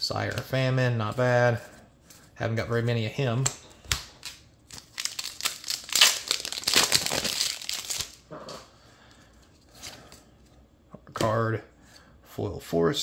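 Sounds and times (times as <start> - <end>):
foil wrapper tearing and crinkling: 4.0 - 8.2.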